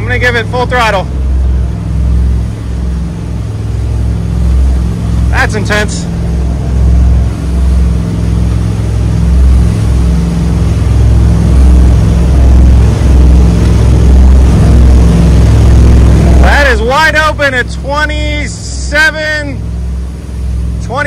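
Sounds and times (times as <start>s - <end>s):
boat engines droning: 0.0s - 21.0s
rushing water and wind: 0.0s - 21.0s.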